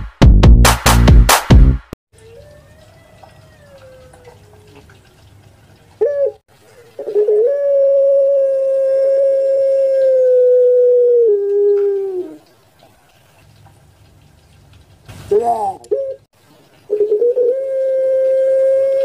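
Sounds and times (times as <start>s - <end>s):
dove cooing: 6.0s - 12.5s, 15.4s - 16.2s, 16.9s - 19.0s.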